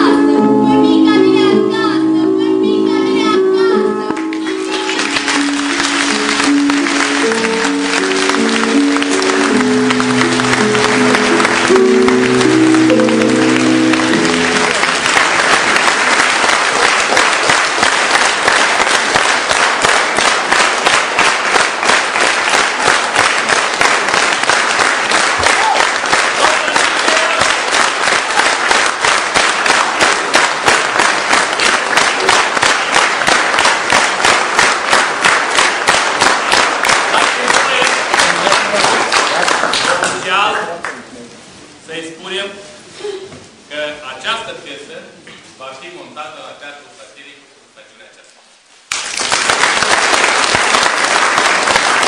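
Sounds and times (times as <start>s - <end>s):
recorded melody: 0.0s - 38.8s
audience clapping in unison: 4.1s - 41.1s, 48.9s - 52.0s
audience applauding: 4.2s - 41.1s, 48.9s - 52.0s.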